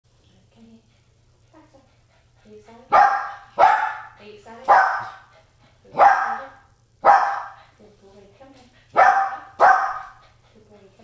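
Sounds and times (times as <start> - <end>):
small dog barking: 2.9 - 5.2, 5.9 - 7.6, 9.0 - 10.2.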